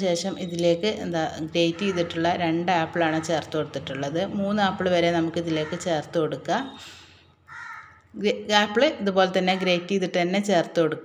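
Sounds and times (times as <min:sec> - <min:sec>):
person speaking: 0:00.0 - 0:06.8.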